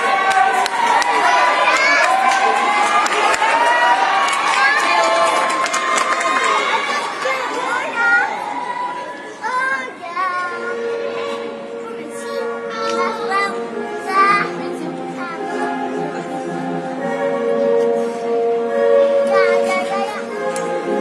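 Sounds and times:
crowd of young voices cheering: 0.0 - 9.5.

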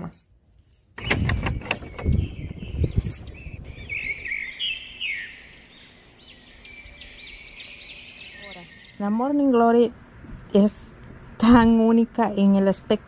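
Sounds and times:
birds chirping: 1.0 - 9.6.

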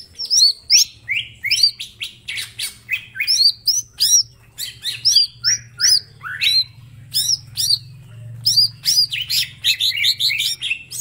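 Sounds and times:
bird singing: 0.0 - 11.0.

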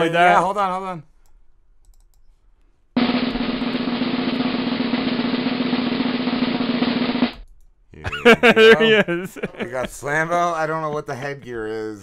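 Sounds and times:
snare drum roll: 3.0 - 7.3.

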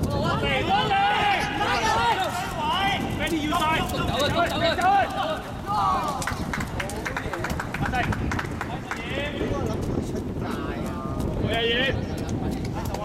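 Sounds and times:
people shouting: 0.1 - 6.3
footsteps splashing on wet court: 1.9 - 9.1.

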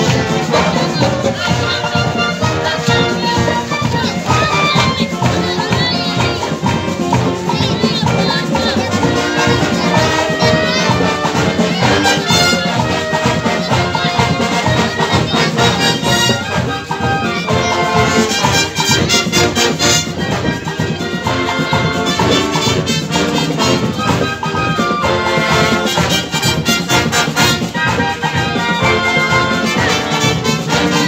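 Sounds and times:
marching band brass: 0.0 - 31.0
percussion steady beat: 0.0 - 31.0.

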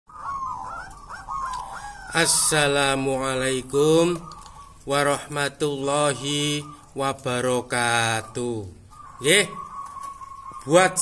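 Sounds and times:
dove cooing: 0.1 - 11.0.

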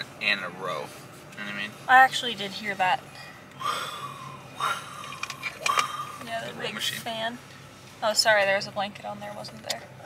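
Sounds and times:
man yawning: 3.6 - 6.2
short breath: 3.6 - 6.2.

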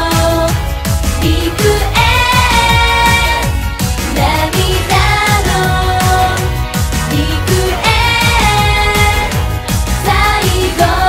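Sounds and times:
women singing together: 0.0 - 11.0.

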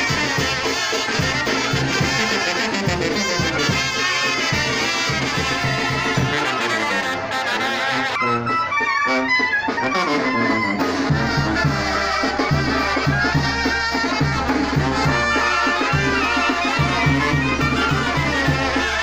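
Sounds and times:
brass band playing: 0.0 - 19.0.

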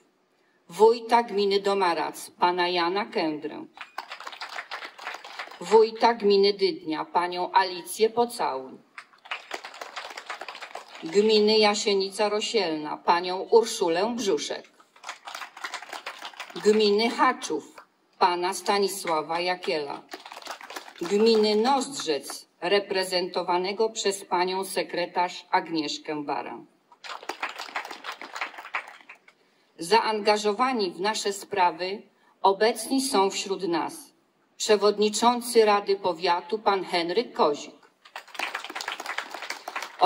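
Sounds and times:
audience applauding: 3.8 - 5.7, 9.0 - 11.2, 14.8 - 17.0, 20.1 - 21.7, 27.0 - 29.3, 38.1 - 40.0.

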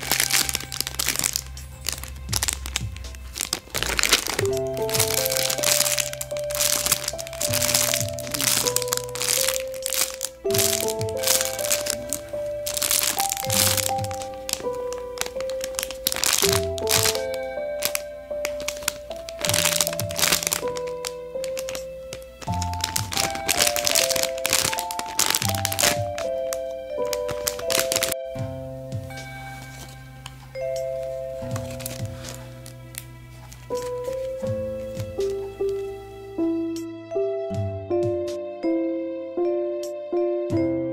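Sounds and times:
plastic bag crinkling: 0.0 - 28.2, 31.0 - 36.0
slow background music: 0.0 - 40.9.

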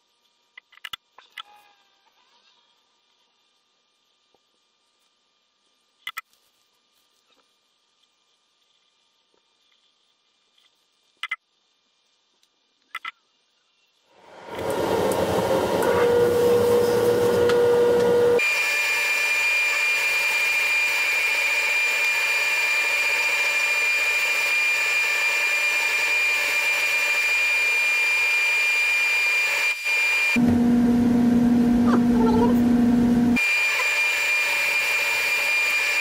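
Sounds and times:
bench buffer motor running: 14.3 - 36.0.

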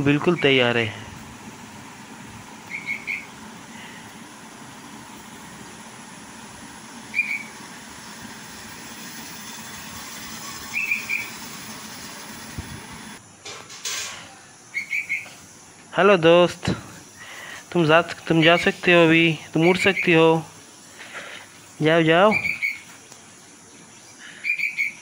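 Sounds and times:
heavy rain hissing: 0.0 - 13.2, 16.4 - 19.6
bird chirping: 2.6 - 3.5, 7.1 - 7.6, 10.6 - 11.4, 14.7 - 15.4, 19.5 - 20.4, 22.1 - 25.0.

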